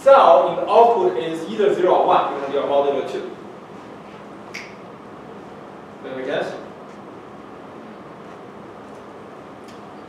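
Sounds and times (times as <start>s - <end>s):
room noise: 0.0s - 10.0s
short sharp click: 4.5s - 4.8s.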